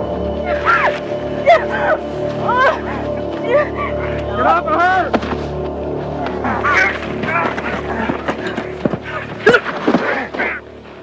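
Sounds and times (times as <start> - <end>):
dramatic music with sustained tones: 0.0 - 11.0
person crying out: 0.5 - 4.7.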